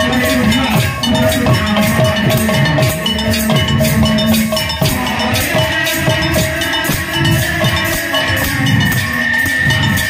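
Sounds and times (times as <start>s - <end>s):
barrel drum playing: 0.0s - 10.0s
ringing metal percussion: 0.0s - 10.0s.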